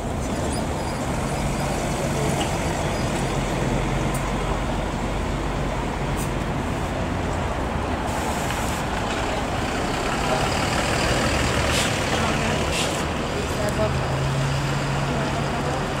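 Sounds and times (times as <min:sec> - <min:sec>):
bus engine driving away: 0:00.0 - 0:16.0
street traffic noise: 0:00.0 - 0:16.0.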